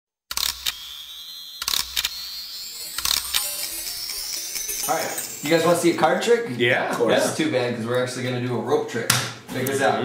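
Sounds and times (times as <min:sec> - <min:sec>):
thin high rising tone: 0:00.7 - 0:06.6
sharp clicks: 0:01.6 - 0:05.4.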